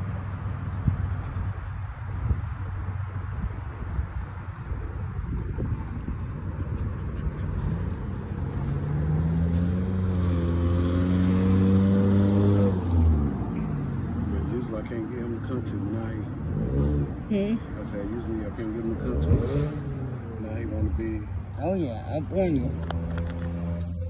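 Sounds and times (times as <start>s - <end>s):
vehicle engine running: 0.0s - 24.0s.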